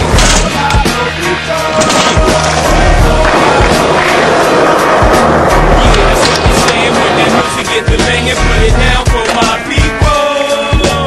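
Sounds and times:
hip-hop beat: 0.0 - 11.0
skateboard rolling on concrete: 0.0 - 11.0.

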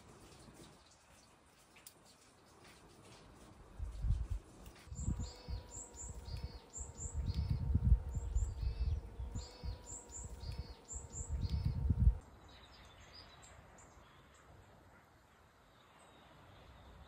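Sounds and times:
wind on microphone: 3.7 - 12.2
faint steady hum: 3.8 - 15.0
songbird chirping: 4.8 - 14.6.

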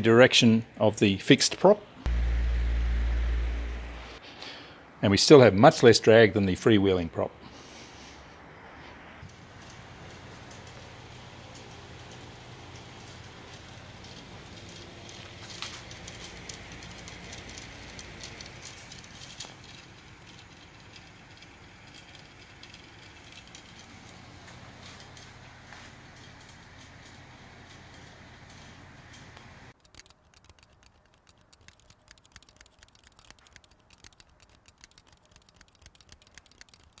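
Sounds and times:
fan motor humming: 2.1 - 4.2, 9.3 - 37.0
faint ticks: 26.4 - 37.0.

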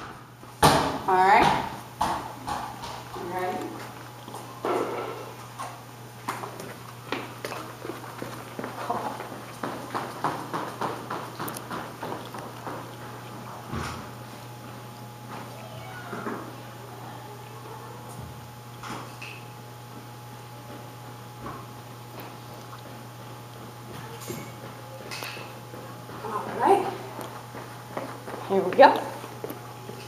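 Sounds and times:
footsteps on tiled floor: 2.5 - 16.5, 19.9 - 30.0.

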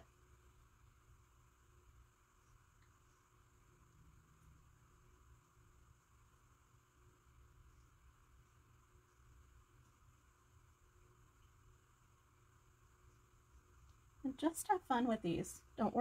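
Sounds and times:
low hum and hiss: 0.0 - 16.0.

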